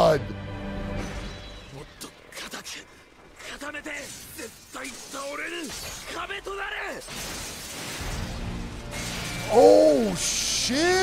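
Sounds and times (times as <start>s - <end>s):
crackling shattering sound effect: 7.0s - 9.8s
man shouting: 9.5s - 11.0s.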